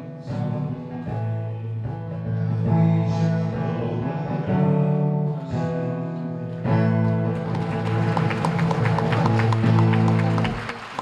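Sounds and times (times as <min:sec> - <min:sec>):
man singing: 0:00.0 - 0:07.4
strummed acoustic guitar: 0:00.0 - 0:10.8
hand-clapping applause: 0:07.0 - 0:11.0.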